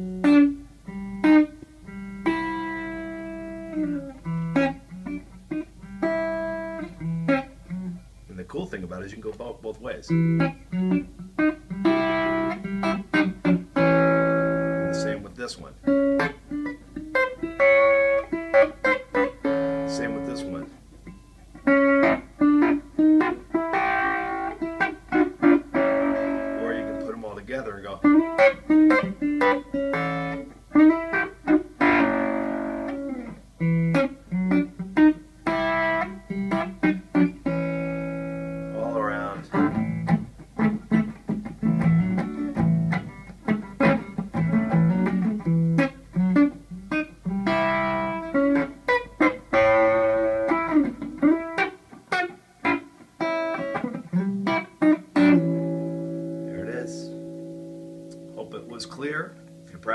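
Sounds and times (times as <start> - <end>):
electric guitar double stops: 28.0 - 59.9.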